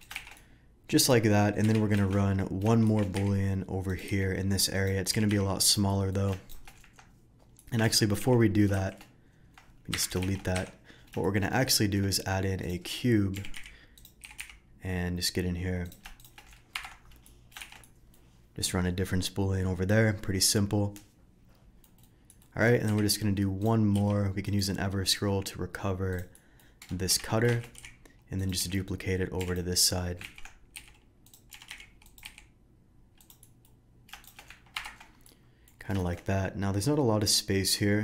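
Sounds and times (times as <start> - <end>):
computer keyboard keys clicking: 0.0 - 0.5, 1.5 - 3.5, 6.1 - 7.9, 8.9 - 11.4, 13.4 - 14.6, 15.8 - 17.9, 21.8 - 24.3, 26.1 - 28.8, 29.4 - 32.5, 33.2 - 35.3
keyboard keystrokes: 34.1 - 35.1.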